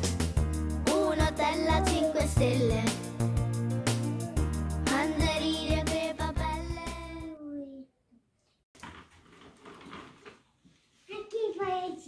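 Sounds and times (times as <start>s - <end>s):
plastic wheels rolling on tile: 8.8s - 10.6s.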